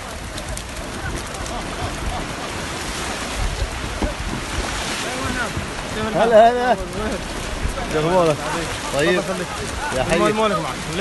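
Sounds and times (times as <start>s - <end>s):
surf on a beach: 0.0s - 11.0s
wind buffeting microphone: 0.0s - 11.0s.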